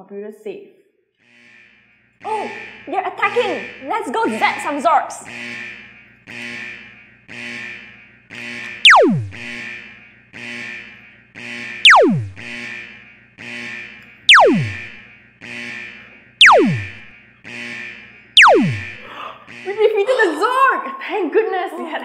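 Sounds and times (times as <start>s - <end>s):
looping electronic game music: 2.2s - 5.8s, 8.8s - 9.7s, 11.8s - 12.6s, 14.3s - 15.0s, 16.4s - 17.1s, 18.4s - 19.9s
laser zap sound effects: 8.8s - 9.6s, 11.9s - 12.5s, 14.3s - 15.0s, 16.4s - 17.1s, 18.4s - 19.0s.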